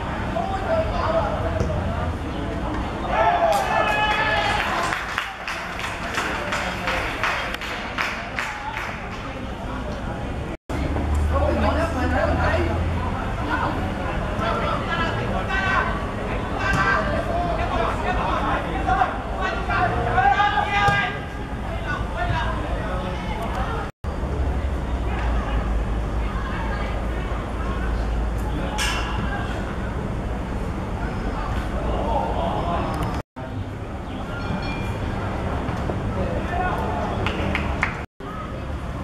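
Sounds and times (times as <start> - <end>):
players shouting: 2.9 - 5.5, 14.5 - 23.9
men shouting and cheering: 3.0 - 5.2.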